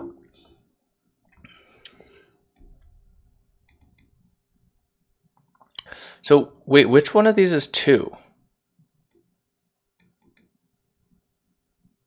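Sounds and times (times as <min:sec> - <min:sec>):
computer mouse clicks: 0:03.6 - 0:04.1, 0:10.0 - 0:10.5.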